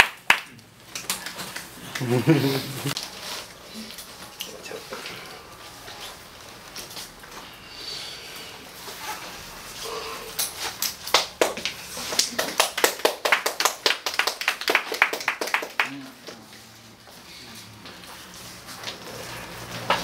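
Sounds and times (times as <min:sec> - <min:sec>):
people clapping: 0:00.0 - 0:02.5, 0:10.9 - 0:16.4.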